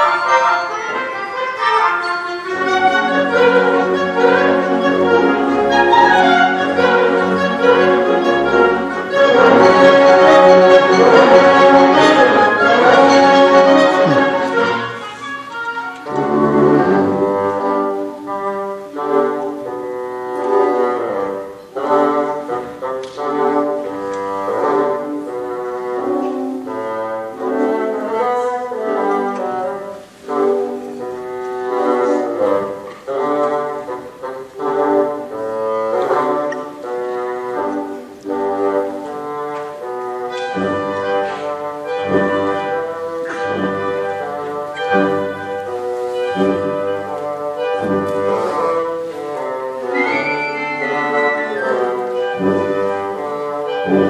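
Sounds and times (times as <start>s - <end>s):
concert band playing: 0.0s - 54.0s.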